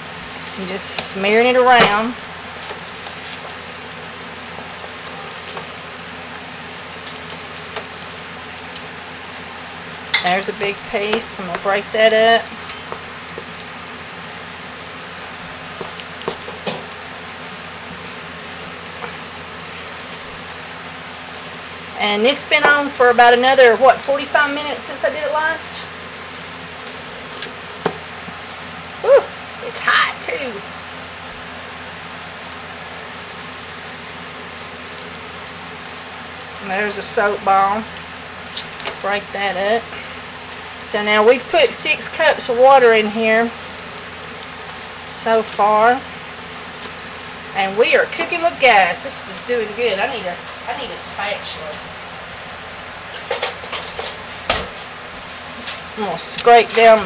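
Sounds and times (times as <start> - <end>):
steady background hum: 0.0 - 57.0.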